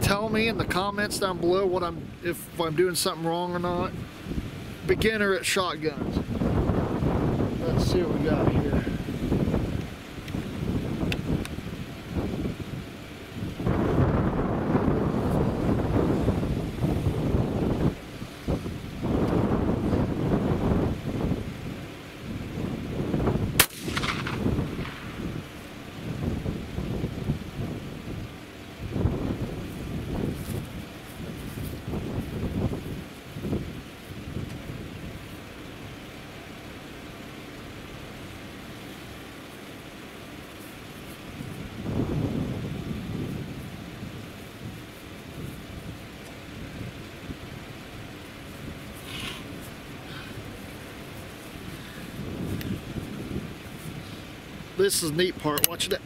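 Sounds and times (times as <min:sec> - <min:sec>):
shotgun shot with echo: 0:23.6 - 0:25.2.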